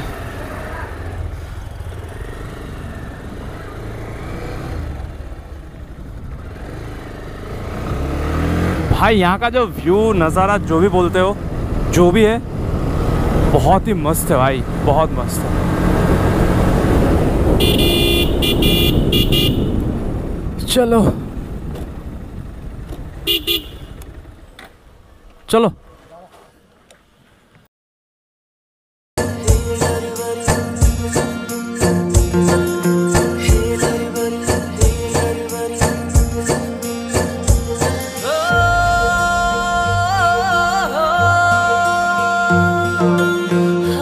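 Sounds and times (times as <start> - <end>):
motorcycle engine rumbling: 0.0 - 27.6
double horn beep: 17.6 - 19.8, 23.3 - 24.0.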